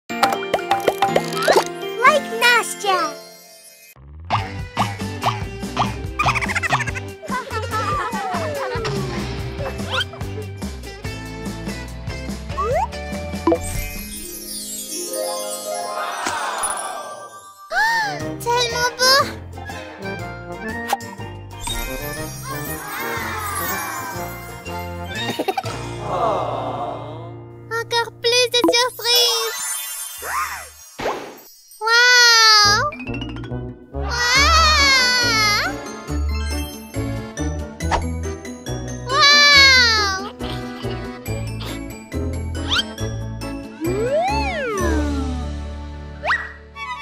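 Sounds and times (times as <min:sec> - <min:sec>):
light music with tinkling chimes: 0:01.3 - 0:04.0, 0:13.5 - 0:19.5, 0:21.2 - 0:25.9, 0:28.7 - 0:33.7, 0:35.4 - 0:39.3, 0:39.9 - 0:45.3
bright children's jingle: 0:01.5 - 0:04.0, 0:13.5 - 0:19.3, 0:21.6 - 0:25.7, 0:35.6 - 0:45.3.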